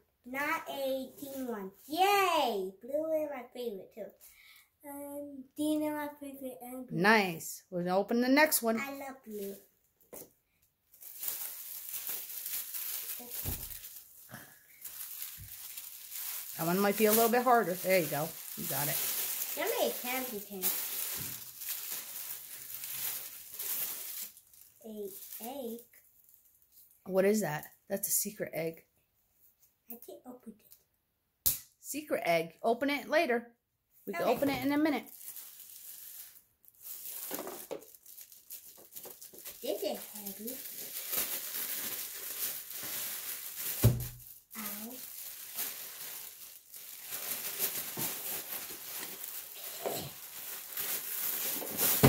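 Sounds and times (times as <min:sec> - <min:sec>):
wrapping paper crinkling and tearing: 0:01.1 - 0:02.1, 0:08.4 - 0:09.6, 0:10.9 - 0:27.0, 0:34.2 - 0:52.0.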